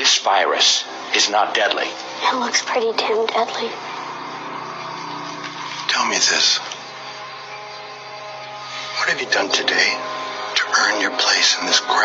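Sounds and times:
steady low hum: 0.0 - 12.0
man speaking: 9.0 - 10.0.

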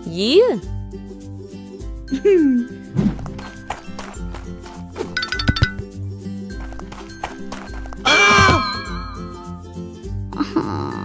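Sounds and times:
cartoon background music: 2.0 - 5.8, 6.6 - 9.6
comic falling-pitch cry: 8.1 - 9.2.

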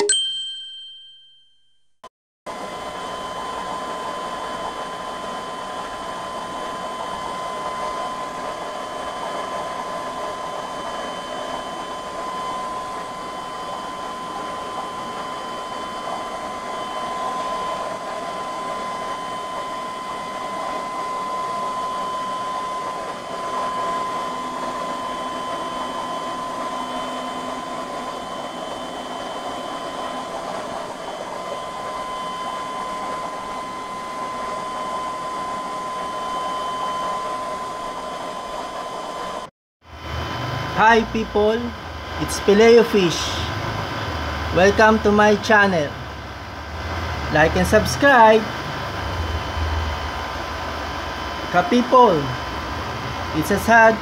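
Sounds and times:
high-pitched whine: 2.5 - 54.0
aquarium air pump hissing: 40.0 - 54.0.

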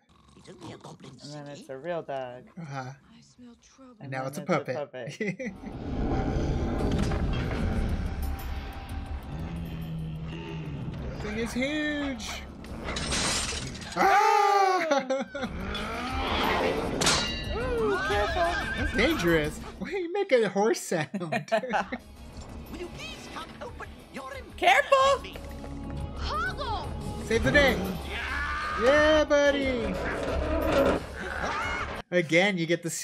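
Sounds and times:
person shouting oh: 14.0 - 14.9.

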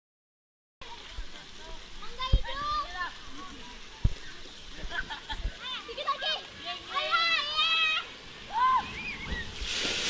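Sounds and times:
child shouting: 5.6 - 9.2
splashing water spray: 6.0 - 10.0.

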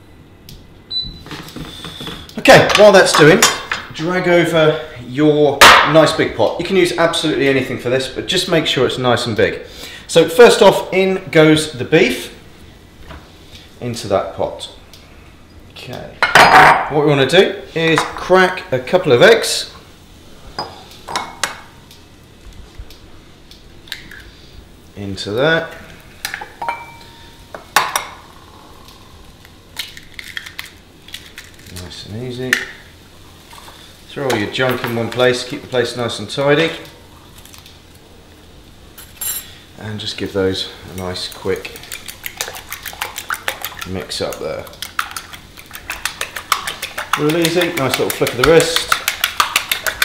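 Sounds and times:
egg cracking: 28.8 - 31.9, 40.9 - 50.0
ceramic bowls clicking and knocking: 41.0 - 50.0.

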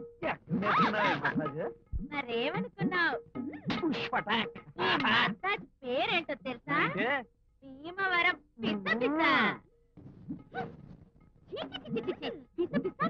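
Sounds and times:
woman talking fast: 2.1 - 3.2, 4.9 - 9.6, 11.6 - 13.0.

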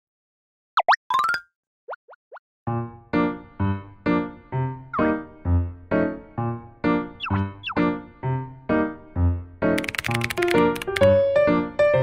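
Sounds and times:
light music: 3.0 - 12.0.

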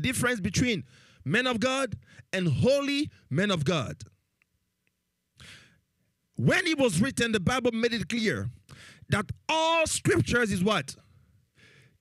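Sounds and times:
short breath into microphone: 0.8 - 1.3, 2.0 - 2.3, 5.4 - 5.8, 8.7 - 9.1, 11.2 - 12.0.

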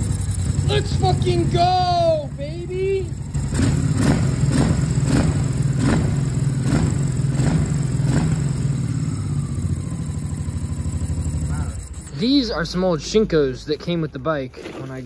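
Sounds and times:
motorcycle engine idling: 0.0 - 13.8.

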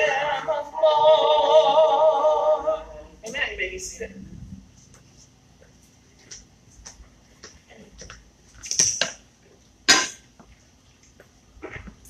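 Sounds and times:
woman singing a hymn: 0.0 - 3.7.

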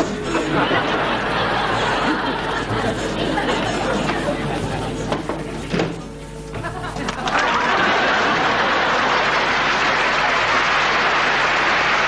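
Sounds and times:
audience murmuring: 0.0 - 12.0.

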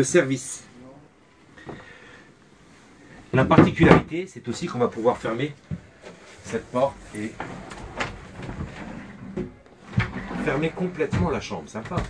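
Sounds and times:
door rubbing as it slides: 6.1 - 11.4.

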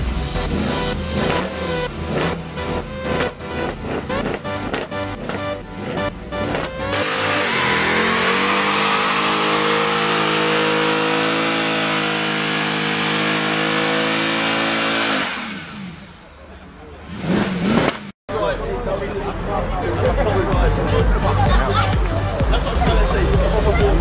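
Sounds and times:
car engine revving high: 0.0 - 16.3, 17.0 - 18.1.

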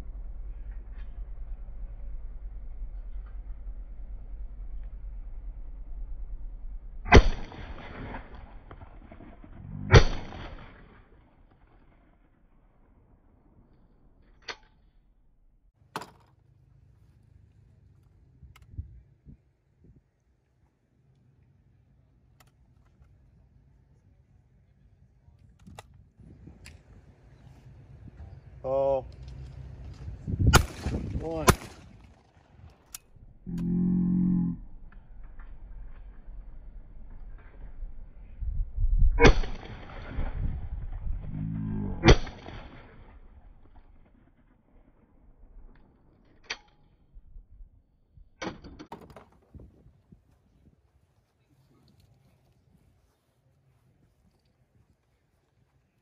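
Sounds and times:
shotgun shots with echo: 7.1 - 8.6, 9.8 - 11.0, 30.5 - 32.2, 39.2 - 40.3, 42.0 - 42.9.

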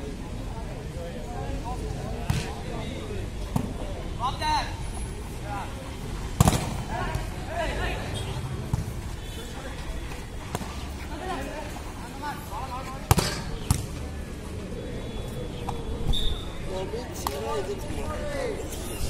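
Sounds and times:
people shouting and chattering: 0.0 - 19.0.

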